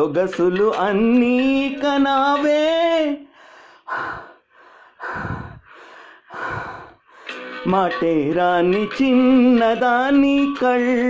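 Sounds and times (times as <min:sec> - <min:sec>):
singer breathing in: 0:03.3 - 0:07.5.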